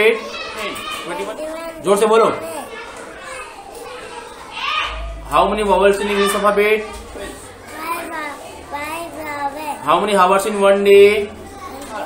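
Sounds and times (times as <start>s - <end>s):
children's voices: 0.0s - 12.0s.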